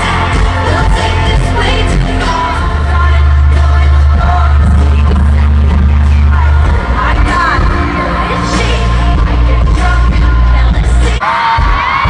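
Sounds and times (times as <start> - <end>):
person singing: 0.0 - 12.0
pop music with heavy bass: 0.0 - 12.0.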